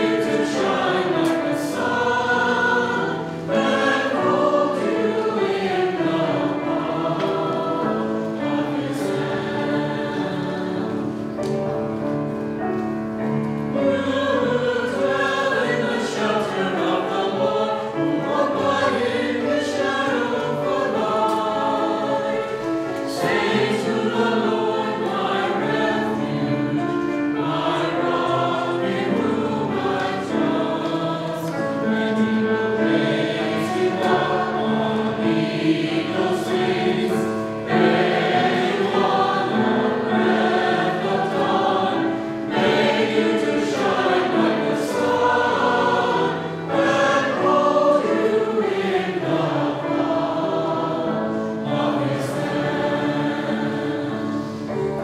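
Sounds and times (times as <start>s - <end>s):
mixed choir singing in parts: 0.0s - 55.0s.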